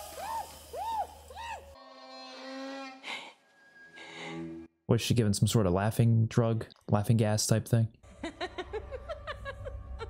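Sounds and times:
woman's muffled screams: 0:00.0 - 0:01.8.

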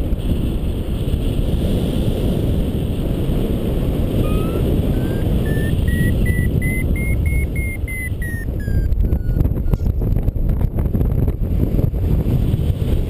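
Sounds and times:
wind noise on microphone: 0:00.0 - 0:13.0
variometer beeping: 0:04.2 - 0:09.8.

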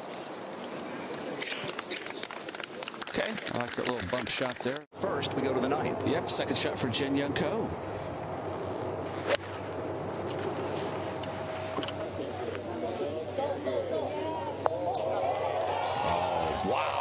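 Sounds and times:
spectators chattering: 0:11.4 - 0:17.0.

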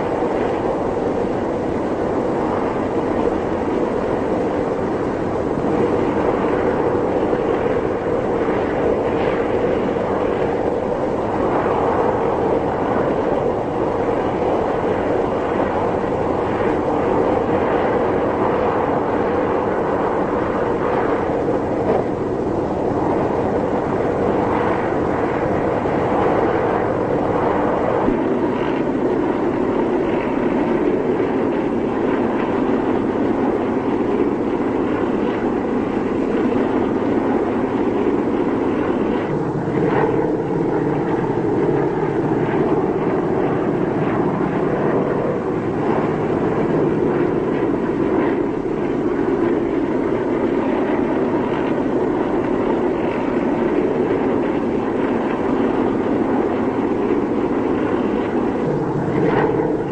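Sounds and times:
propeller aircraft engines droning: 0:00.0 - 0:59.9.

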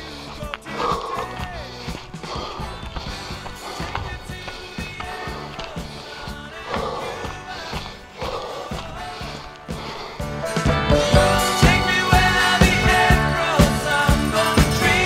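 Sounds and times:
background music with steady beat: 0:00.0 - 0:15.0.

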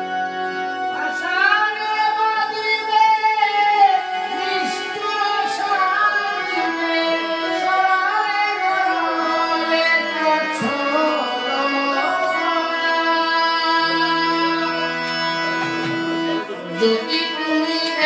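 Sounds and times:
held accompaniment notes: 0:00.0 - 0:18.0.

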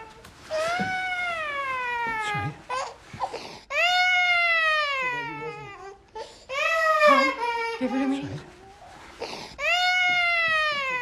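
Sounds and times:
baby crying: 0:00.0 - 0:08.4, 0:09.2 - 0:11.0.

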